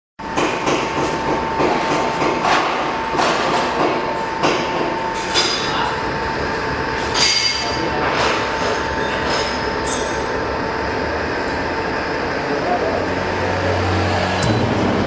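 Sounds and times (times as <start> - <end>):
constant high whine: 0.3 - 15.0.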